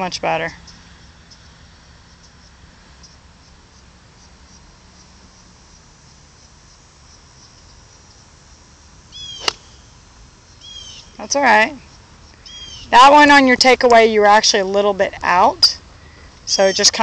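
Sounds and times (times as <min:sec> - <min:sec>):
faint bird chirps: 0:09.1 - 0:11.2, 0:11.8 - 0:13.0
descending bird call: 0:09.1 - 0:13.4
golf club striking ball: 0:09.3 - 0:09.8.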